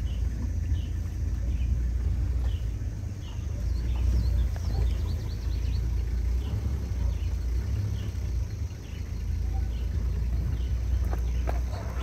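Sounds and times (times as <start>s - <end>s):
bird chirping: 0.0s - 12.0s
steady low rumble: 0.0s - 12.0s.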